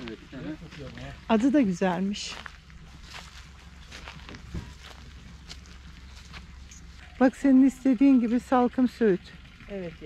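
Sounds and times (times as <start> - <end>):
faint footsteps: 0.0 - 7.2
low steady rumble: 0.0 - 10.0.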